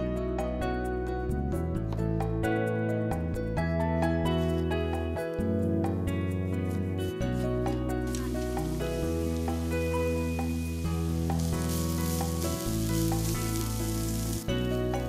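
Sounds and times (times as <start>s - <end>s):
background music: 0.0s - 15.0s
potatoes sizzling in hot oil: 8.0s - 15.0s.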